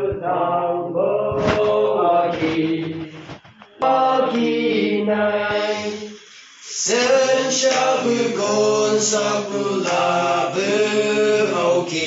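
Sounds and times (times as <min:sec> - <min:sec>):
young men singing a hymn: 0:00.0 - 0:12.0.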